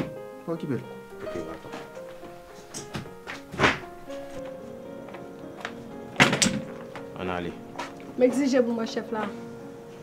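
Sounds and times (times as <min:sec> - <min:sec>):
background music of held notes: 0:00.0 - 0:10.0
loud thunk: 0:02.9 - 0:03.9.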